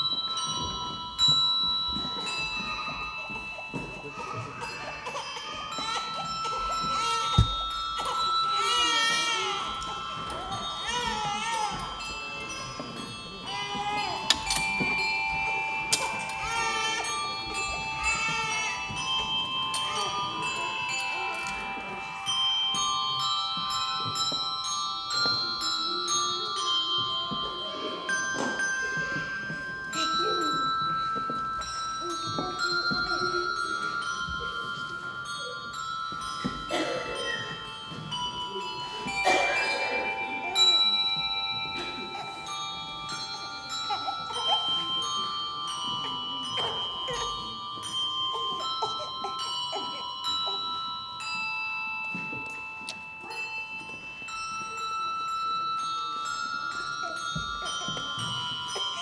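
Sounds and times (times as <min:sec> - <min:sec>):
handbell choir playing: 0:00.0 - 0:59.0.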